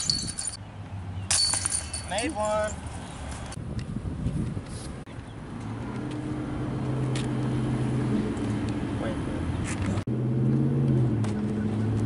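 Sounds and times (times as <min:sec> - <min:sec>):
metal chains jingling: 0:00.0 - 0:00.6, 0:01.3 - 0:02.8.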